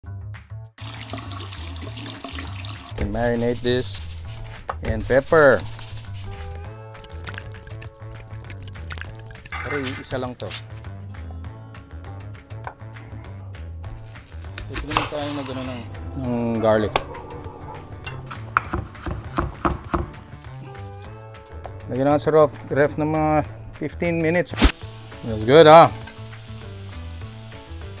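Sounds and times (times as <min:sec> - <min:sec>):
low background music: 0:00.0 - 0:28.0
food sizzling in a pan: 0:00.8 - 0:03.0, 0:24.6 - 0:28.0
kitchen faucet running: 0:00.8 - 0:03.0, 0:24.8 - 0:28.0.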